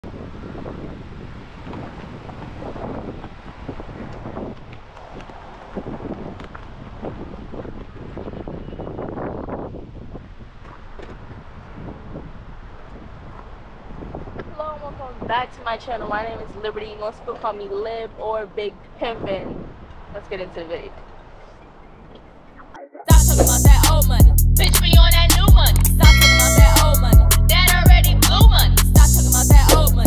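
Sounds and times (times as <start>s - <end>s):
wind buffeting microphone: 0.0s - 22.5s.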